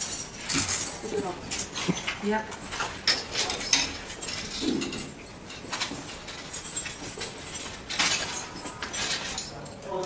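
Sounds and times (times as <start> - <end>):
metal chains clinking: 0.0 - 10.0.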